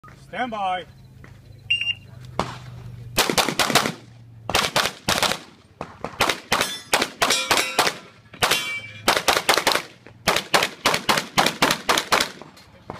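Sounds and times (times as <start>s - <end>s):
start beep: 0.9s - 2.1s
handgun shots: 3.2s - 12.4s
steel targets ringing: 6.6s - 9.1s.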